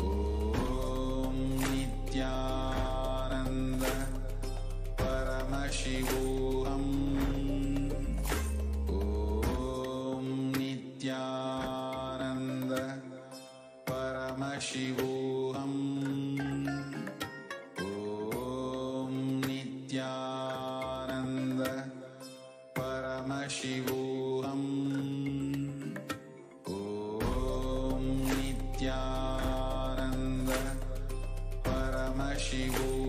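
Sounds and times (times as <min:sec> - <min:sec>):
mantra chant with music: 0:00.0 - 0:33.0.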